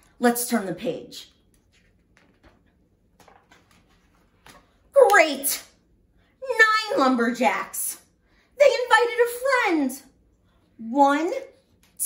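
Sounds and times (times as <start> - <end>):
paper page turning: 1.4 - 4.9.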